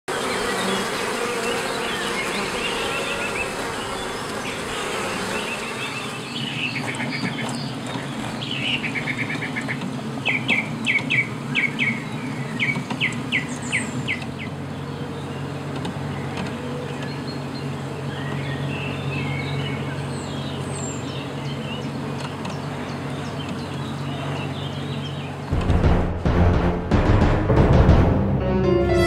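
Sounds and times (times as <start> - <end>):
birds trilling: 0.1 - 25.6
bees buzzing: 0.1 - 26.2.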